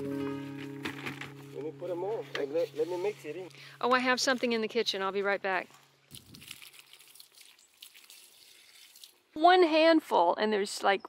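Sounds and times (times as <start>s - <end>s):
compost rustling and crackling: 0.5s - 9.0s.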